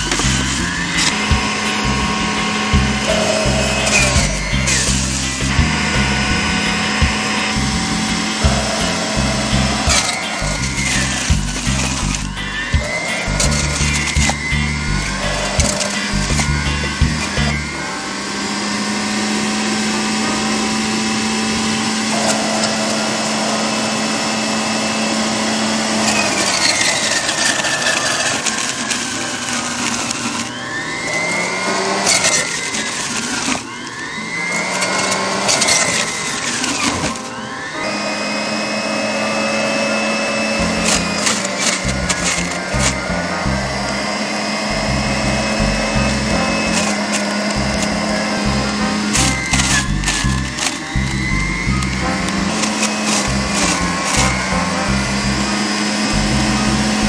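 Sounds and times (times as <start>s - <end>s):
electric juicer motor whine: 0.0s - 57.0s.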